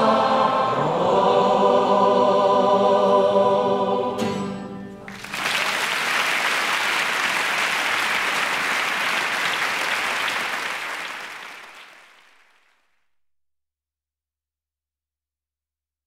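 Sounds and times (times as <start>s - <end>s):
audience applauding: 5.0s - 13.1s.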